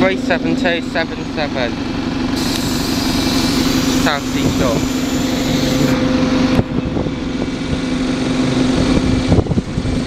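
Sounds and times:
bus diesel engine idling: 0.0s - 8.4s.

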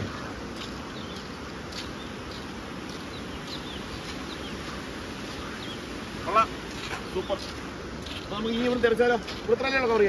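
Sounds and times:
small birds chirping: 0.0s - 10.0s
steady outdoor hiss: 0.0s - 10.0s.

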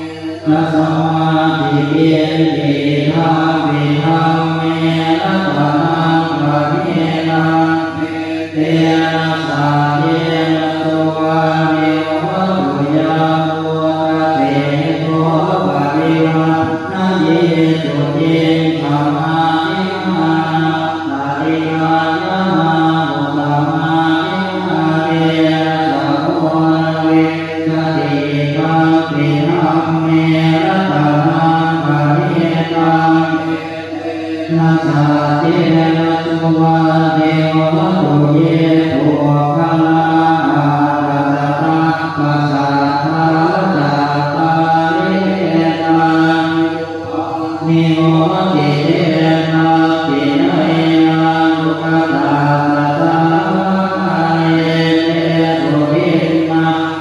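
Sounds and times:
monks chanting together: 0.0s - 57.0s.

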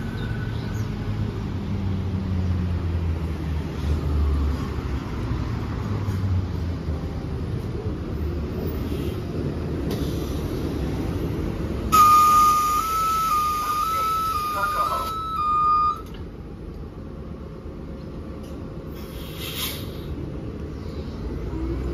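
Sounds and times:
bus engine rumble: 0.0s - 21.9s
whistle-like tone: 11.9s - 16.1s.

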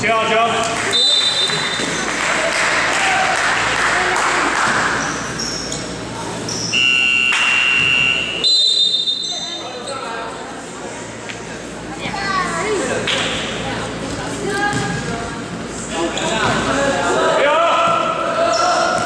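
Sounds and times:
voices shouting in gym: 0.3s - 10.1s, 15.9s - 19.0s
shrill signal tone: 6.7s - 9.6s.

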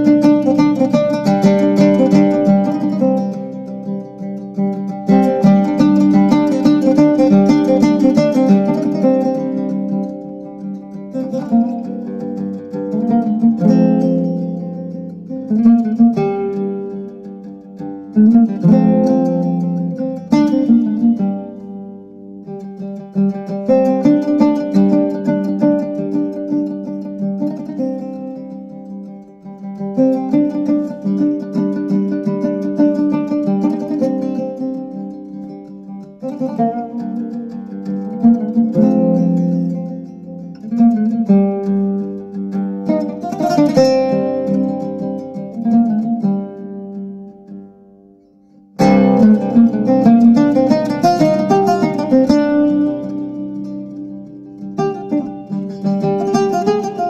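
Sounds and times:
plucked string instrument music: 0.0s - 57.0s.

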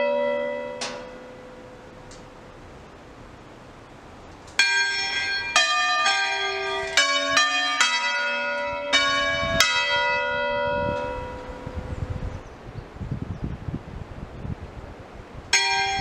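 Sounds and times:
church bells ringing: 0.0s - 2.9s, 4.6s - 12.0s, 15.5s - 16.0s.

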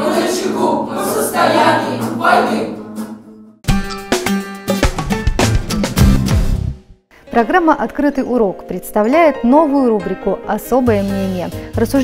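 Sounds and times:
children singing: 0.0s - 3.2s
acoustic guitar: 1.3s - 6.8s.

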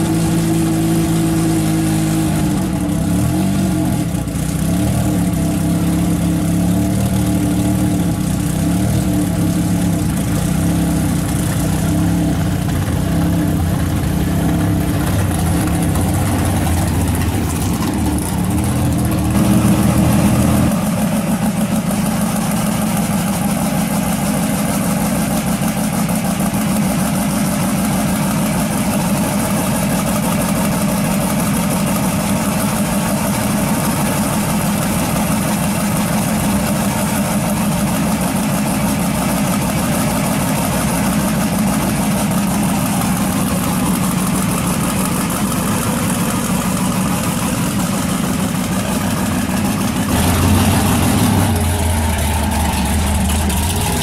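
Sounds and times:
another car engine: 0.0s - 54.0s
car engine idling: 0.0s - 54.0s.

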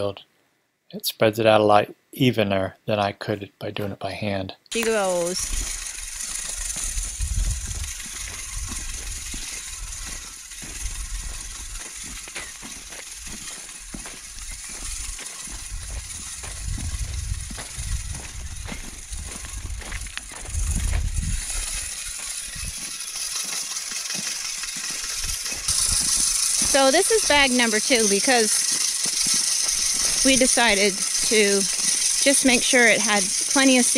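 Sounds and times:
hand-cranked seeder whirring: 4.7s - 33.9s
footsteps on soil: 4.8s - 33.8s
low rumbles: 5.4s - 12.0s, 14.3s - 22.9s.

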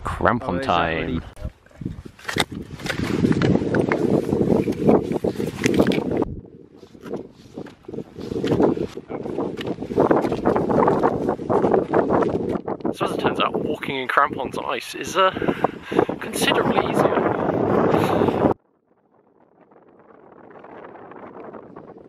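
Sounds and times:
wind buffeting microphone: 0.0s - 22.0s
boot footsteps on snow and rock: 6.9s - 12.9s.

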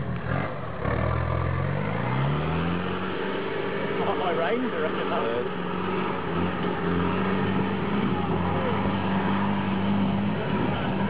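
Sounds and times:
engine revving under load: 0.0s - 11.0s.

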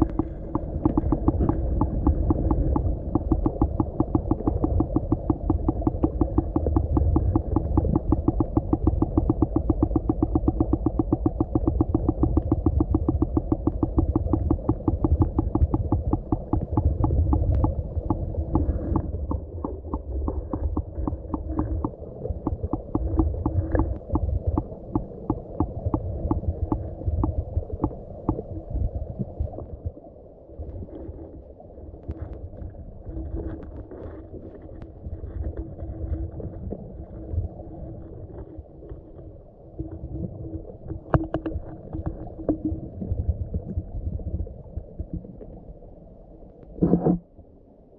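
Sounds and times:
faint steady hum: 0.0s - 47.9s
underwater rumble of moving water: 0.0s - 47.9s.

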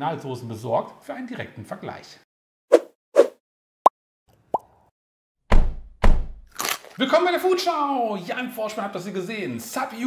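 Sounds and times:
short swish: 2.7s - 3.4s.

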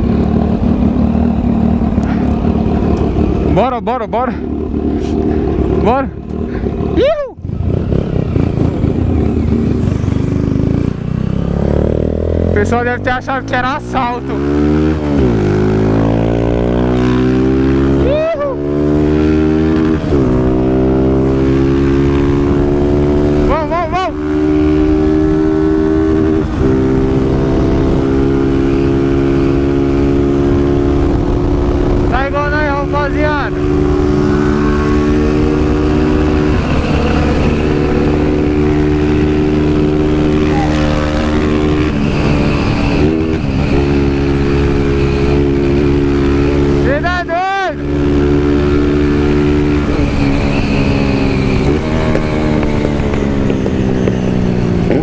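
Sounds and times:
motorcycle engine running: 0.0s - 55.0s.

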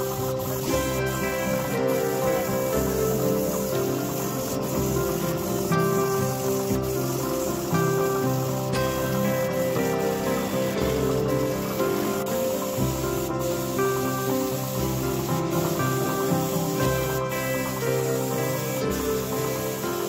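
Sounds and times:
background music: 0.0s - 20.0s
spray gun hissing: 0.0s - 20.0s.

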